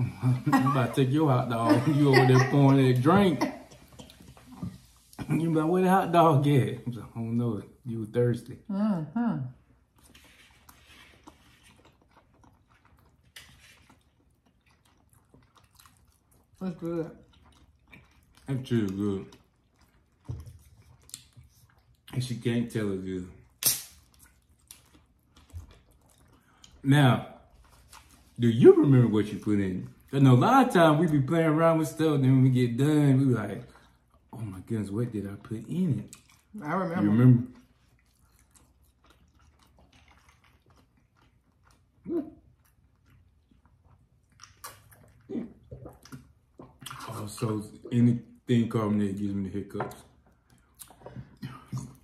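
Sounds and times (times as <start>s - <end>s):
throaty gulp: 44.4s - 47.5s, 50.8s - 52.0s.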